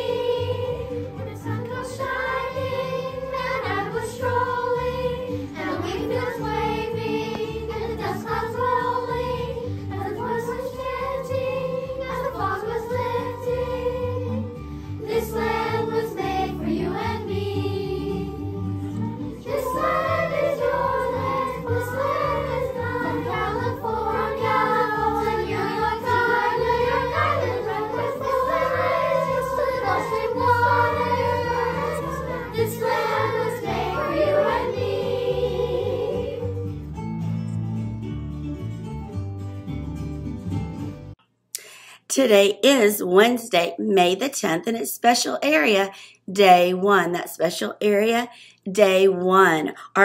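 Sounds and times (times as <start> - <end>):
children's choir singing: 0.0 - 36.7
instrumental accompaniment: 10.0 - 41.2.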